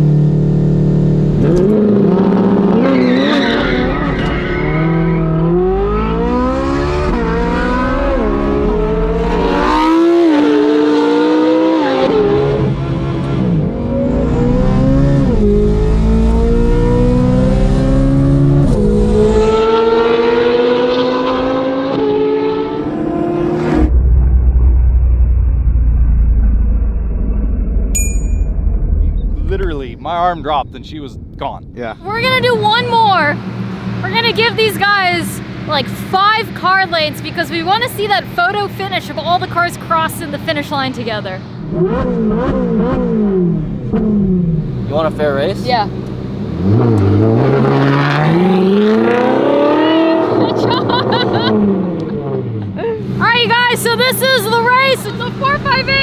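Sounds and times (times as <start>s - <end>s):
car engine accelerating through gears: 0.0s - 23.9s, 41.6s - 54.0s.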